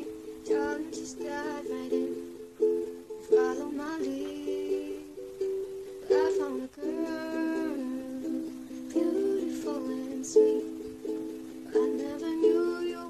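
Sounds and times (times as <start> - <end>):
girl singing: 0.0 - 13.0
ukulele strumming chords: 0.0 - 13.0.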